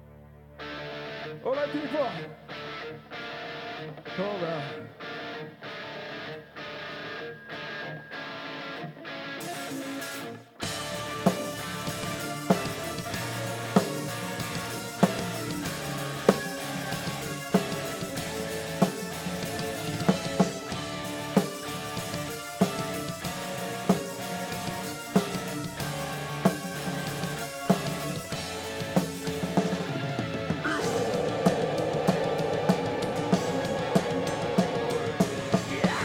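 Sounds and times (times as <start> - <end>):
rock guitar intro: 0.1 - 36.0
heavy rock band playing: 6.9 - 36.0.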